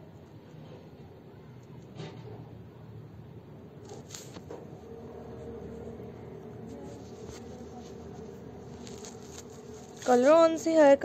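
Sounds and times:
faint steady hum: 0:02.5 - 0:11.0.

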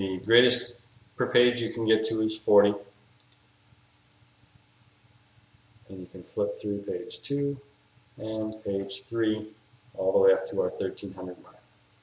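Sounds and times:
computer mouse clicks: 0:03.2 - 0:03.5, 0:08.4 - 0:08.6.

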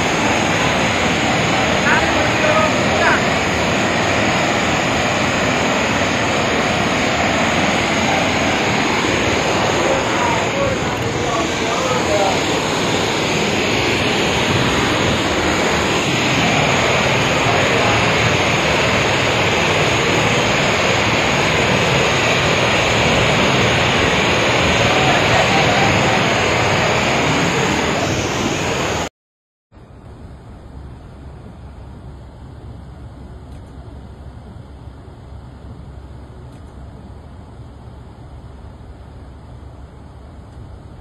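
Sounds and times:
floodwater rushing: 0:00.0 - 0:29.0.

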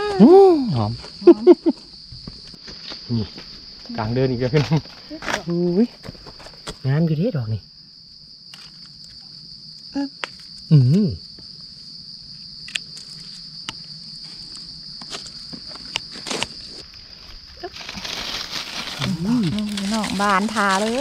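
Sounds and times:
insect chorus buzzing: 0:00.0 - 0:21.0
dry grass and leaves rustling: 0:08.4 - 0:10.7, 0:11.5 - 0:21.0
clicks and crackles of leaf litter: 0:15.0 - 0:21.0.

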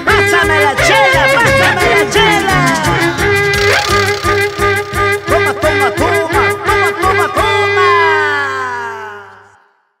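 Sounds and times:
band holding sliding chord: 0:01.2 - 0:06.0
low bass note: 0:01.2 - 0:06.0.

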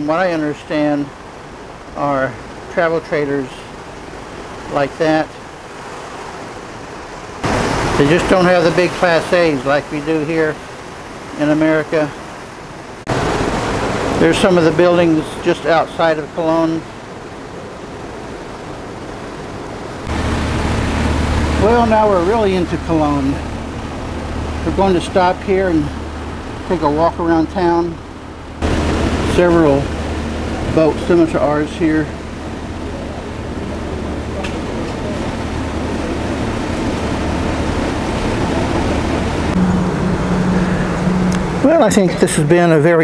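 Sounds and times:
boat engine hum: 0:00.0 - 0:43.0
deep steady rumble: 0:00.0 - 0:43.0
moving water: 0:00.0 - 0:43.0.

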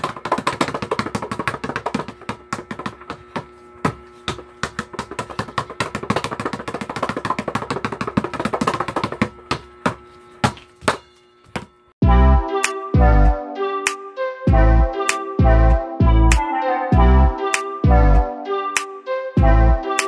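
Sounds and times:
basketball bouncing on tiled floor: 0:00.0 - 0:11.7
steady hum: 0:00.0 - 0:12.4.

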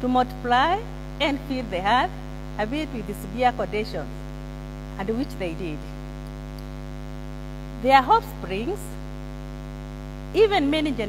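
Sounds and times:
woman speaking: 0:00.0 - 0:04.1, 0:05.0 - 0:06.0, 0:07.8 - 0:09.0, 0:10.4 - 0:11.0
electrical mains hum: 0:00.0 - 0:11.0.

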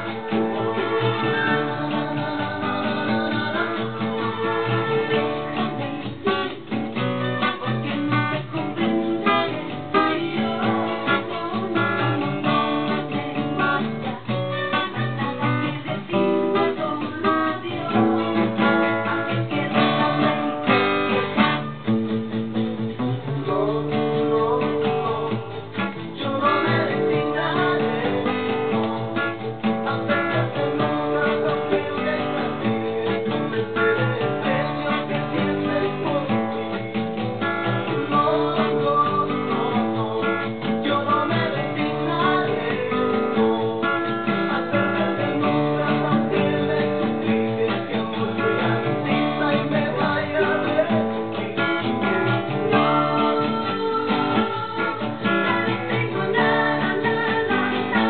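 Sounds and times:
acoustic guitar strumming chords: 0:00.0 - 0:58.0.

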